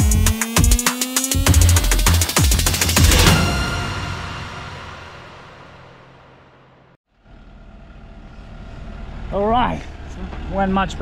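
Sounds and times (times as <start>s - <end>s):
background music: 0.0s - 6.2s.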